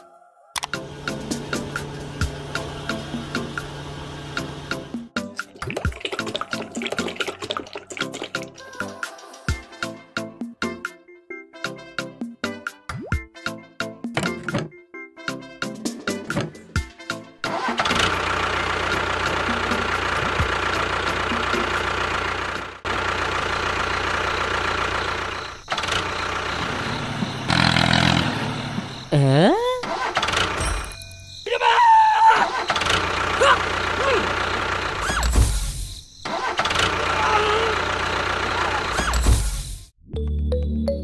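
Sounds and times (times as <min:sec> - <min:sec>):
music: 0:00.0 - 0:18.2, 0:19.2 - 0:21.9, 0:40.0 - 0:41.0
tractor engine running: 0:00.6 - 0:05.4, 0:17.4 - 0:31.0, 0:32.5 - 0:39.9.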